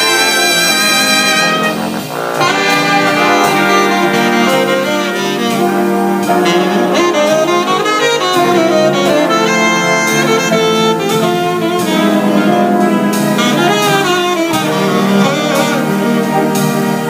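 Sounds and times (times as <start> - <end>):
jazz big band playing: 0.0 - 17.0
saxophone solo: 0.0 - 17.0.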